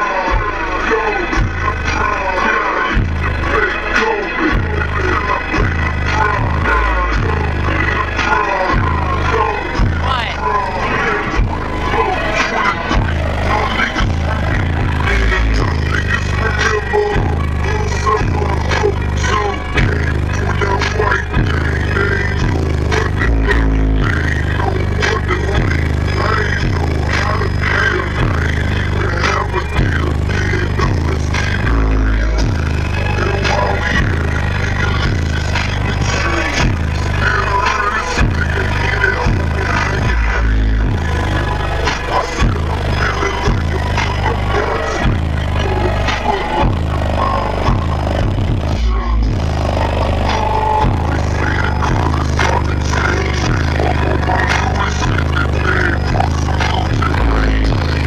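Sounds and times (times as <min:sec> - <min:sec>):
loud bass-heavy music: 0:00.0 - 0:58.0
cab rattling and buzzing: 0:03.0 - 0:58.0.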